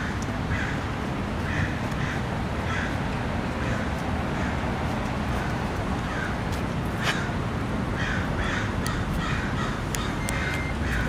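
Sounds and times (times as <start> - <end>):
birds calling: 0.0 - 6.4, 8.0 - 11.0
steady background noise: 0.0 - 11.0.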